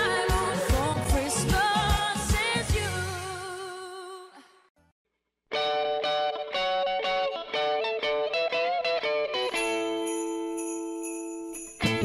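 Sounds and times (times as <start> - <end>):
christmas song: 0.0 - 4.3, 9.3 - 12.0
plucked guitar notes: 5.5 - 9.8.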